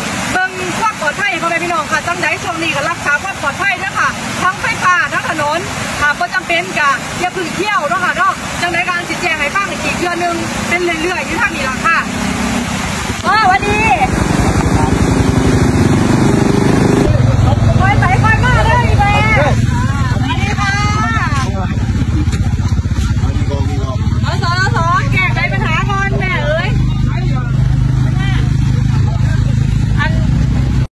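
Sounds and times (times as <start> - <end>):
woman talking: 0.3 - 12.1, 13.1 - 14.5, 17.6 - 21.5, 24.2 - 26.8
loud low outdoor rumble: 8.2 - 30.9.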